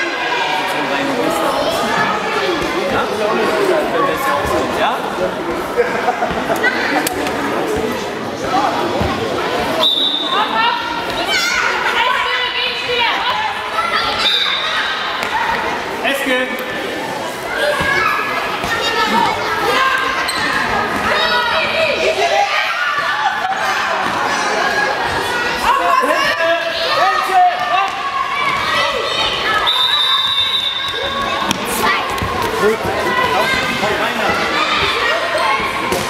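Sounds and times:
children shouting: 10.5s - 15.8s, 17.4s - 36.0s
ball bouncing on hall floor: 31.2s - 32.6s.

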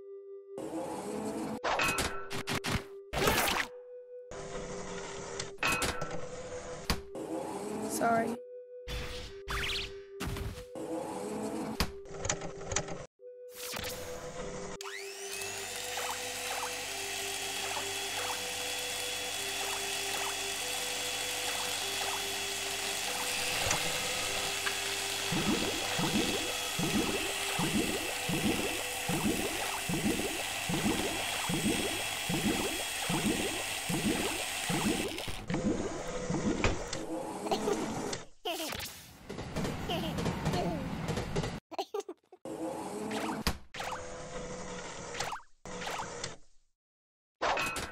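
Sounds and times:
background music: 0.0s - 35.7s
cartoon power tool whir: 4.3s - 8.3s, 12.7s - 39.0s
bubbly effects: 25.2s - 36.9s.

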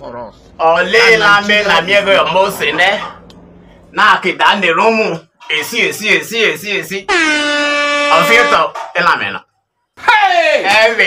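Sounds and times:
air horn blast: 7.1s - 8.8s.

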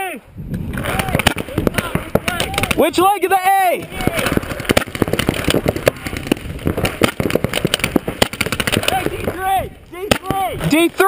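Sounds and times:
paintball markers firing: 0.6s - 3.0s, 3.8s - 11.0s.

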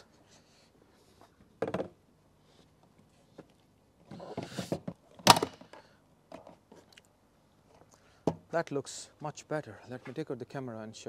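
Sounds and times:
plastic box knocking and scraping: 1.6s - 2.0s, 4.0s - 6.6s
sharp loud locking snap: 5.2s - 5.6s.

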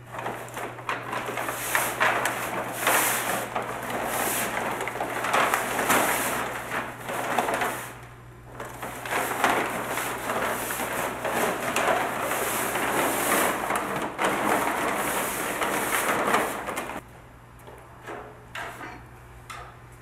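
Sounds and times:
paper crinkling: 0.1s - 8.0s, 8.6s - 17.0s.

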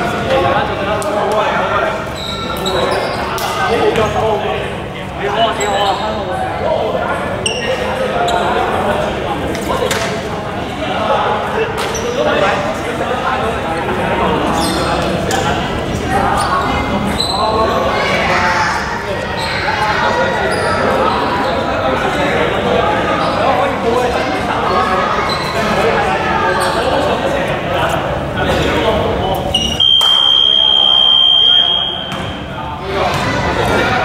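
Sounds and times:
people talking echoing indoors: 0.0s - 34.0s.

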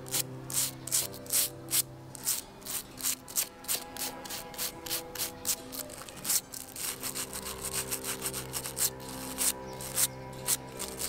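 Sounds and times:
tool scraping moss-covered soil: 0.0s - 11.0s.

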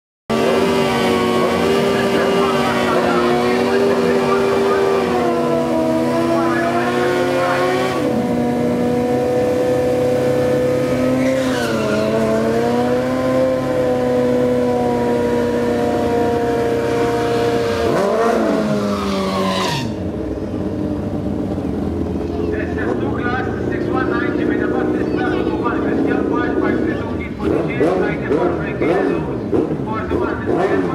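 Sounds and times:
motorcycle engine at high revs: 0.3s - 30.9s.

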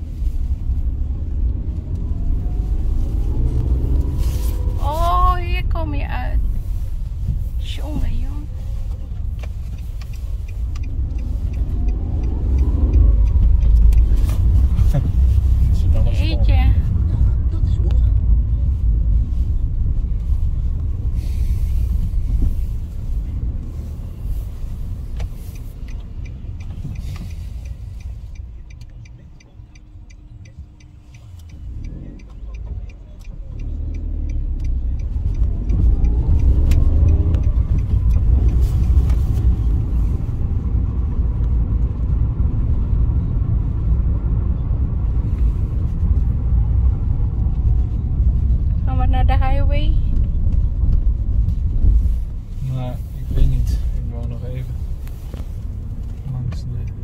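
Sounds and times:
car engine and road rumble: 0.0s - 57.0s
faint regular ticking: 0.2s - 17.0s, 17.8s - 42.4s, 49.7s - 57.0s.

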